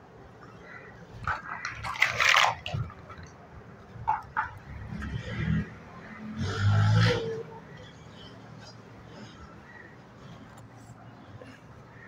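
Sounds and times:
plastic blocks clicking: 1.2 - 3.4.

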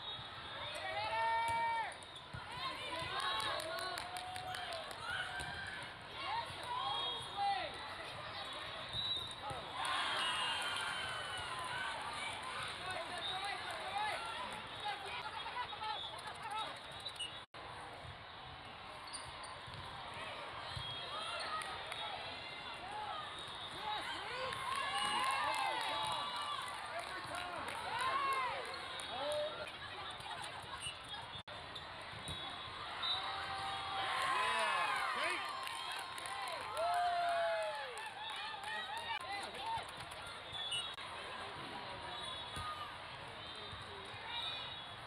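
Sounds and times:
sports hall background noise: 0.0 - 45.0
voices of players and spectators: 0.0 - 45.0.

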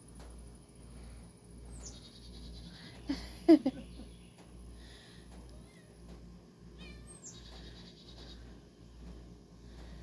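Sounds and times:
steady low hum: 0.0 - 10.0
songbird chirping and trilling: 0.7 - 9.9.

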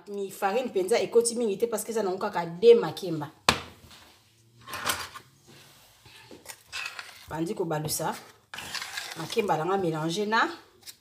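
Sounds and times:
spoon scraping in metal pot: 6.0 - 9.6.

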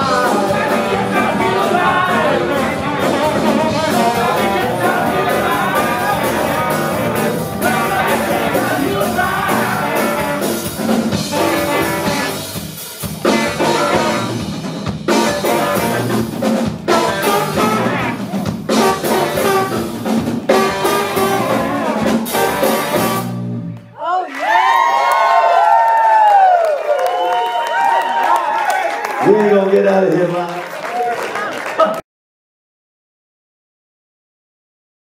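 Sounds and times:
audience whooping and calling: 0.0 - 10.6, 24.0 - 30.1
blues-rock band playing: 0.0 - 23.9.

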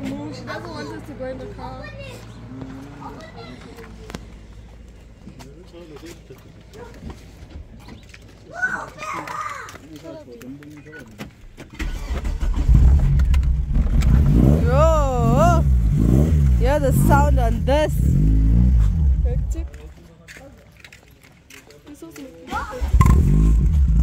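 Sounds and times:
car engine starting and running: 11.4 - 19.9, 22.7 - 24.0.

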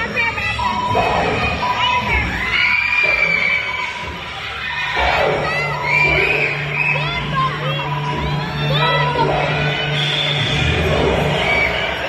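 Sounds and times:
children shouting and shrieking: 0.0 - 10.0
high-pitched screams: 1.0 - 12.0.

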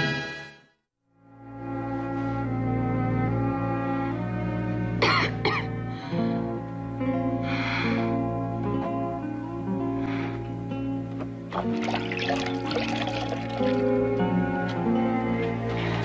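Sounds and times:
person coughing: 5.0 - 5.7.

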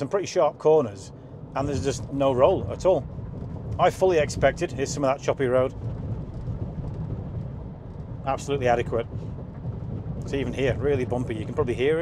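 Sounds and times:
road rumble inside vehicle: 0.0 - 12.0.

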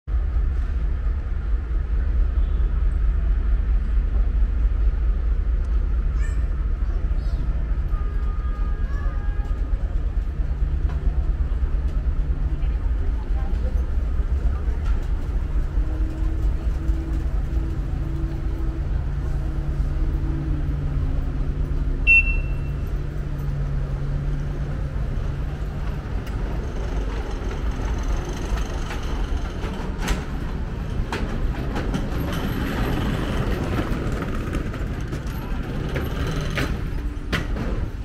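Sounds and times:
passing traffic: 0.1 - 38.0
short high beep: 22.0 - 22.8.

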